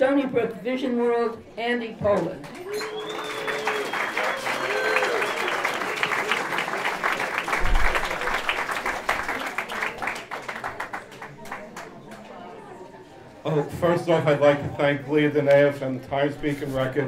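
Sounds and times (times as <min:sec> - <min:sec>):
audience applauding: 0:02.5 - 0:11.9.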